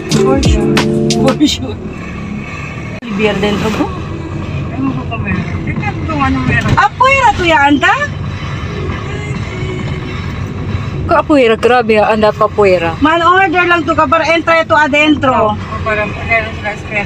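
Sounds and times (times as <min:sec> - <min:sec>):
car engine and road rumble: 0:00.0 - 0:17.0.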